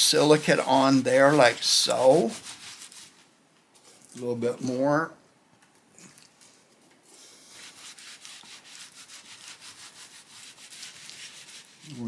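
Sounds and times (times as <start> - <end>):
cloth rag rubbing on wood: 0.0 - 3.3, 7.2 - 12.0.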